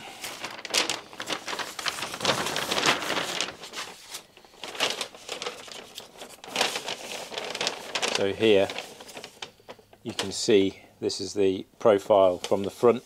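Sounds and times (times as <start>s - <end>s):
paper sheet rustling and crinkling: 0.0s - 10.7s, 12.1s - 13.0s.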